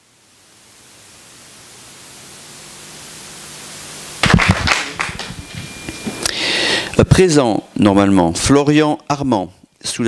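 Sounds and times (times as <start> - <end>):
microphone hiss: 0.0 - 10.0.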